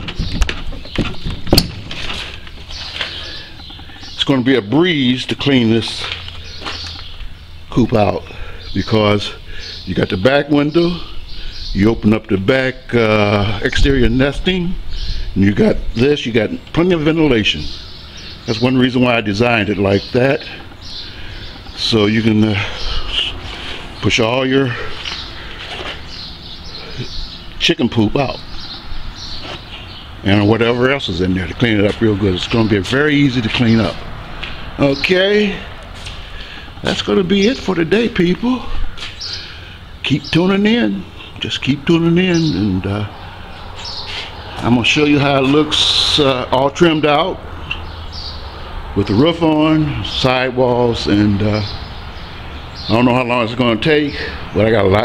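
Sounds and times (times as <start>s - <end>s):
faint distant bird calls: 0.0s - 55.0s.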